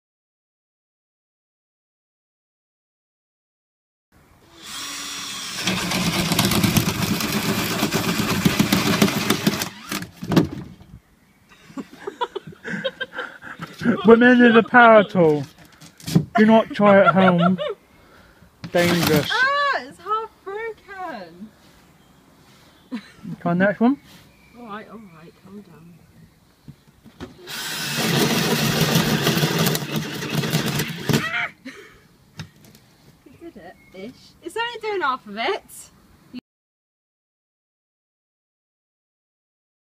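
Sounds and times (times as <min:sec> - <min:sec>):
cordless drill boring plywood: 0:04.6 - 0:10.4, 0:18.7 - 0:19.4, 0:27.3 - 0:31.3
people laughing: 0:11.5 - 0:15.4, 0:16.4 - 0:17.8, 0:29.7 - 0:31.8.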